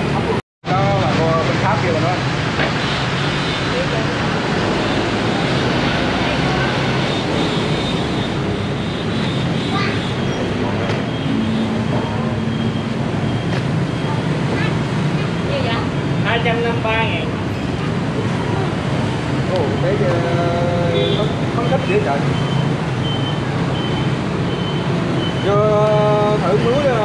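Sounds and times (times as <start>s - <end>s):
street traffic din: 0.0s - 27.0s
voices talking: 3.4s - 24.1s, 25.2s - 27.0s.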